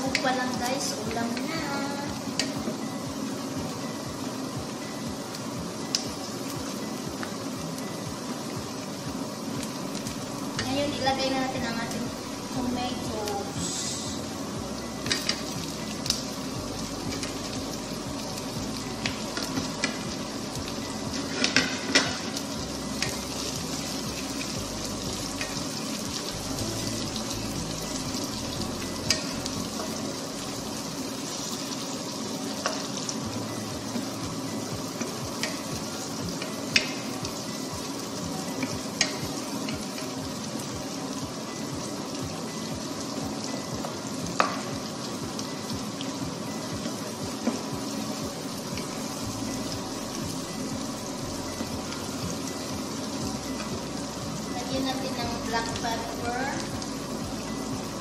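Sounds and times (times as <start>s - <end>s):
vegetables sizzling in a frying pan: 0.0s - 58.0s.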